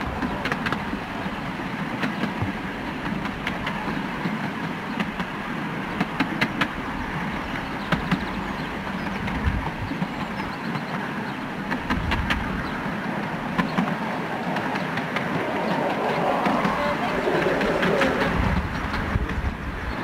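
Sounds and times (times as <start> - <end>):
train wheels rumbling on rail: 0.0 - 20.0
sharp clicks of track: 6.0 - 6.8, 11.7 - 19.5.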